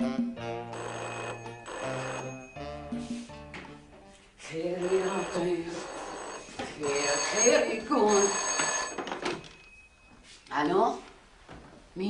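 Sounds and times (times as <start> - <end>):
music playing: 0.0 - 6.6
telephone bell ringing: 0.7 - 3.2, 4.7 - 10.4.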